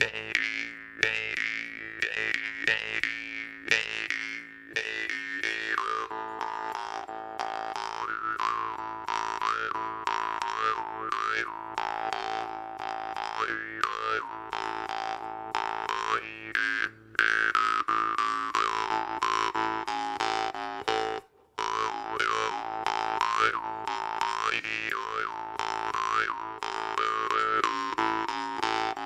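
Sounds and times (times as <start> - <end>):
jaw harp playing: 0.0 - 29.0.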